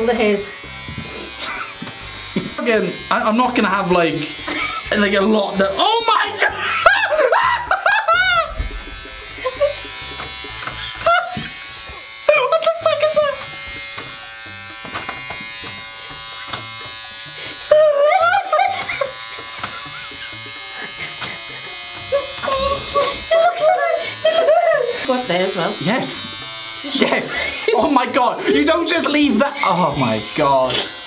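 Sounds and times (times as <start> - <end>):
electric hair clippers buzzing: 0.0 - 31.0.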